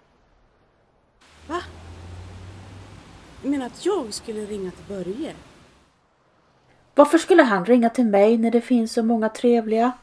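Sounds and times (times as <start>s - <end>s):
low steady hum: 1.2s - 6.2s.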